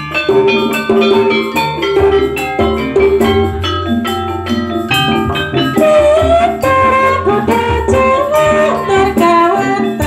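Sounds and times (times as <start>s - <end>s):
drums: 0.0s - 10.0s
metallophone notes ringing: 0.0s - 10.0s.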